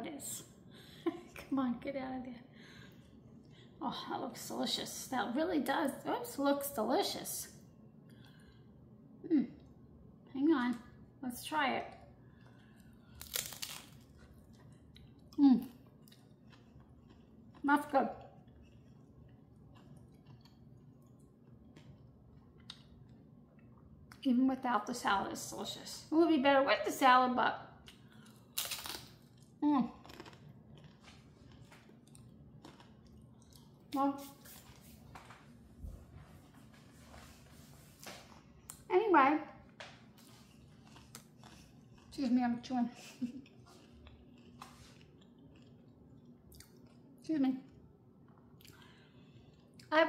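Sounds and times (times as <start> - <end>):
person chewing crunchy food: 12.2 - 23.2, 27.8 - 34.0, 40.1 - 42.3, 43.4 - 47.2
tortilla chip crunching: 13.0 - 15.3, 27.9 - 33.8.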